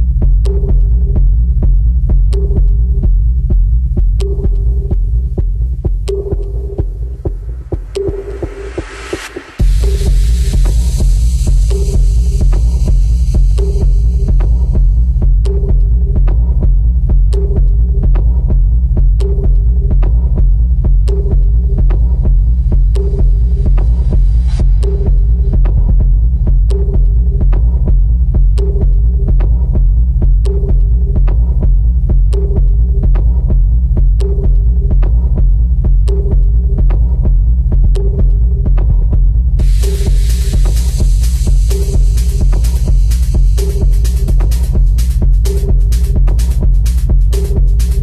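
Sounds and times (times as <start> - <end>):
deep pulsing bass drone: 0.0 - 48.0.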